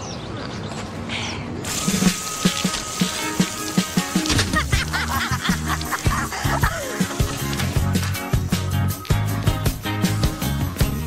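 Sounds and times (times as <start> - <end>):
spraying water hiss: 1.6 - 10.2
music with low thumping beat: 2.4 - 11.0.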